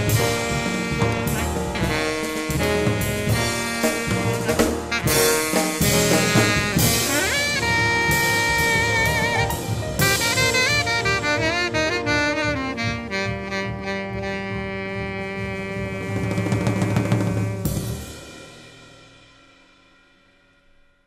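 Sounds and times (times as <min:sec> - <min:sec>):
saxophone phrase: 0:00.0 - 0:17.9
jazz quartet playing: 0:00.0 - 0:18.6.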